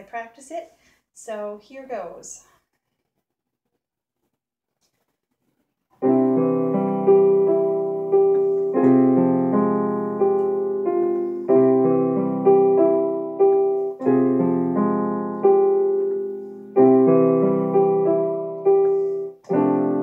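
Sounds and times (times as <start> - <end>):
digital piano slow piece: 6.0 - 20.0.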